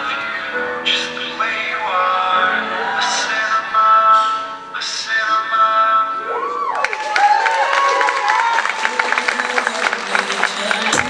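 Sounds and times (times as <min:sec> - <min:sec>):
audience cheering: 0:01.8 - 0:03.7, 0:06.2 - 0:11.0
shouted whoops: 0:06.2 - 0:09.1
people clapping: 0:06.6 - 0:11.0.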